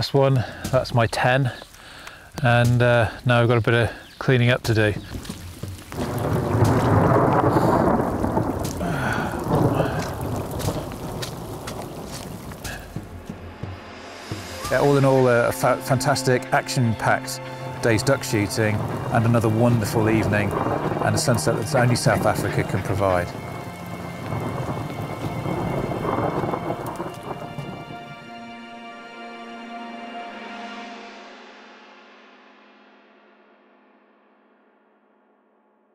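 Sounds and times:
rain falling: 0:00.0 - 0:28.8
rolling thunder: 0:05.9 - 0:13.1, 0:17.5 - 0:28.2
music drone: 0:13.1 - 0:32.0.

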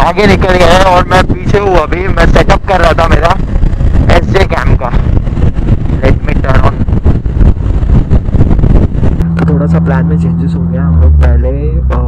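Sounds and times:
wind and road noise: 0:00.0 - 0:12.0
motorcycle engine running: 0:03.3 - 0:12.0.

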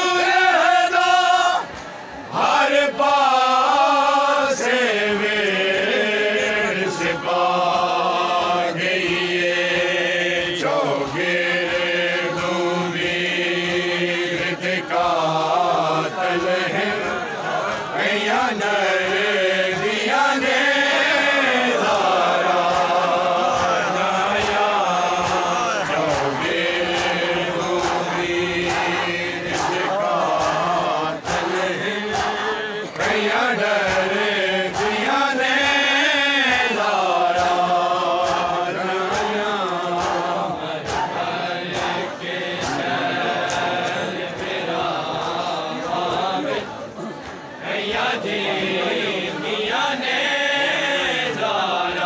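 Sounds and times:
men chanting a lament: 0:00.0 - 0:52.0.

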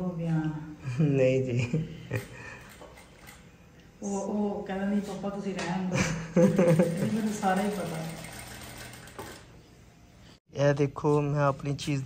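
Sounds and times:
electric sewing machine humming: 0:06.3 - 0:09.6.

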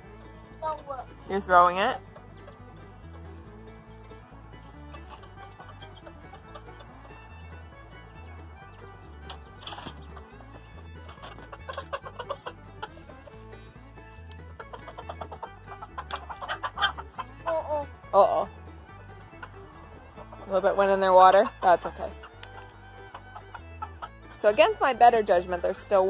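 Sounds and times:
chickens clucking: 0:01.4 - 0:26.0.

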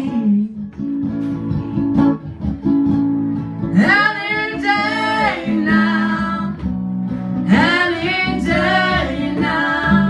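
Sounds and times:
group singing in harmony: 0:03.8 - 0:06.8, 0:07.4 - 0:10.0.

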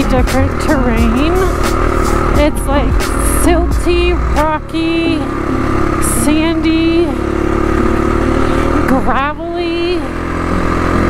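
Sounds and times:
motorcycle engine drone: 0:00.0 - 0:11.0.

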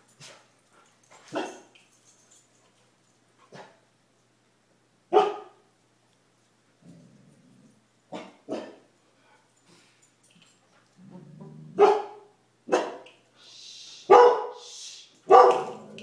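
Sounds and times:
dogs barking: 0:01.3 - 0:01.7, 0:05.1 - 0:05.6, 0:08.1 - 0:08.8, 0:11.8 - 0:13.1, 0:14.1 - 0:14.6, 0:15.3 - 0:16.0
dog growling: 0:11.0 - 0:11.8.

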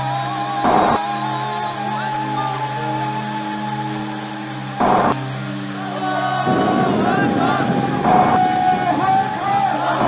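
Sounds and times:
dense noisy wash: 0:00.0 - 0:10.0
intro music with sustained notes: 0:00.0 - 0:10.0
loud burst of noise: 0:00.0 - 0:10.0.

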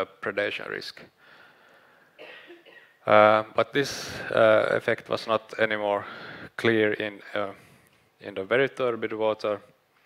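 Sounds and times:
faint short cough: 0:02.2 - 0:03.0.

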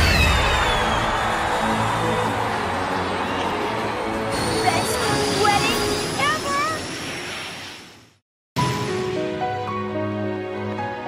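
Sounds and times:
rising whistle: 0:00.0 - 0:01.8
music: 0:00.0 - 0:06.7, 0:08.6 - 0:11.0.

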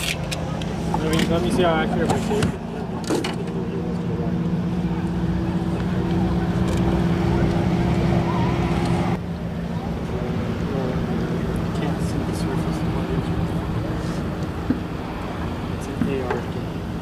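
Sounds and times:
boat engine droning: 0:00.0 - 0:17.0
wind: 0:00.0 - 0:17.0.

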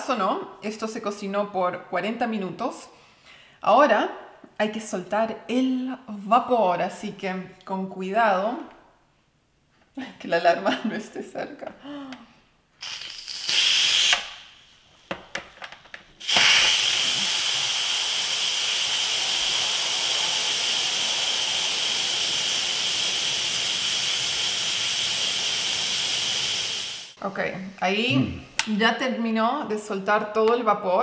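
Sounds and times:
steam hissing from valve: 0:12.8 - 0:14.5, 0:16.2 - 0:27.2.

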